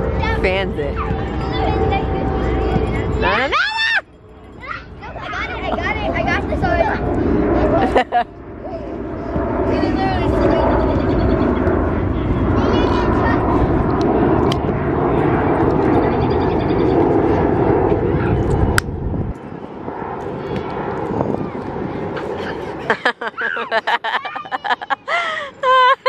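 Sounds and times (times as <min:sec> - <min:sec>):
steady low roar: 0:00.0 - 0:22.9
children shrieking and shouting: 0:01.0 - 0:07.2, 0:21.2 - 0:26.0.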